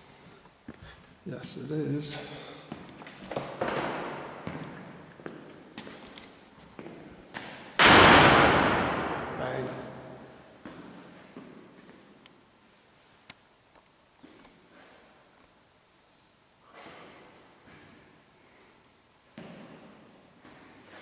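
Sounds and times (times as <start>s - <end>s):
heavy door slamming: 7.8s - 10.2s.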